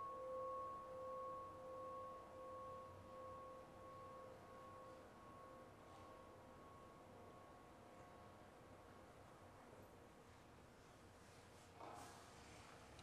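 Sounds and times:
bell-like ringing tone: 0.0s - 8.1s.

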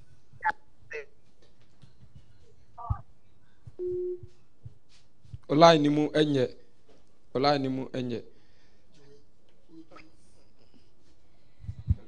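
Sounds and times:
telephone line beep: 3.8s - 4.2s.

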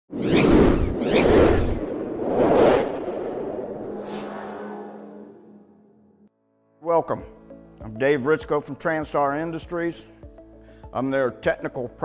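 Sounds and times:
whoosh sound effects: 0.1s - 6.2s.

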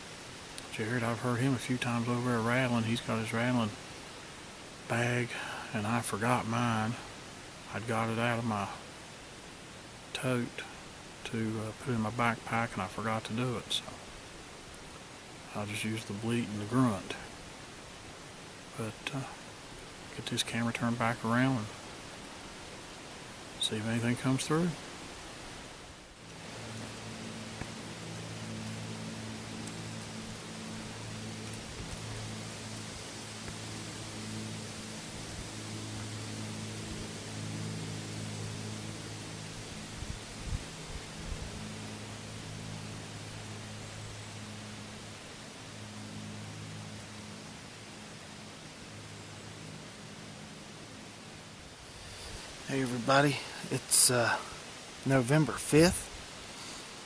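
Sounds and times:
faint low hum: 0.0s - 57.0s
wind through trees: 0.0s - 57.0s.

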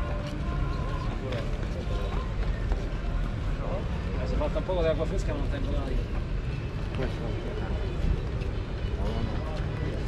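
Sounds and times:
footsteps: 0.0s - 3.5s.

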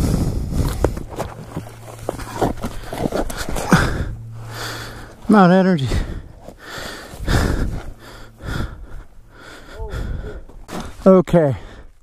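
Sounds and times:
person breathing hard: 0.0s - 1.1s, 2.6s - 10.7s, 11.5s - 12.0s.

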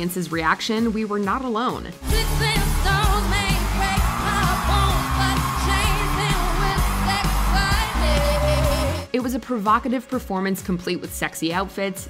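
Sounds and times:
heavy electronic bass beat: 2.0s - 9.1s
woman singing: 2.0s - 9.3s.

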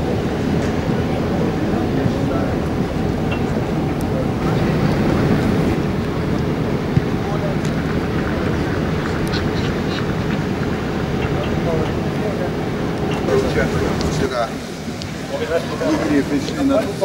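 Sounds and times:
murmur of voices: 0.0s - 17.0s
wind buffeting microphone: 0.0s - 17.0s.

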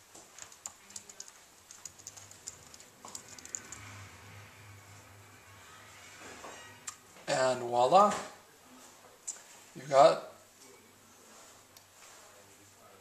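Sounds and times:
computer keyboard typing: 0.3s - 4.0s.

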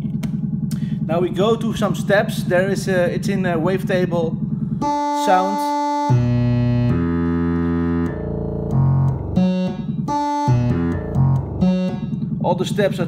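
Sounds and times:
synthesizer stepped sequence: 0.0s - 13.0s.

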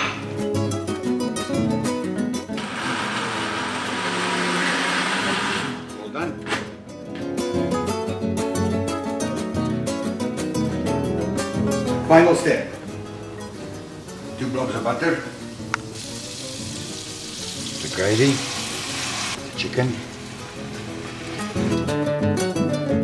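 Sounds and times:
acoustic guitar music: 0.0s - 23.0s
jug blender running: 2.6s - 5.9s, 18.2s - 19.4s.

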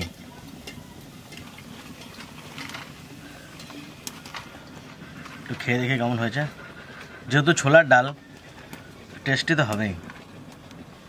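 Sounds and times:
crisp crust crackling: 0.0s - 11.0s.

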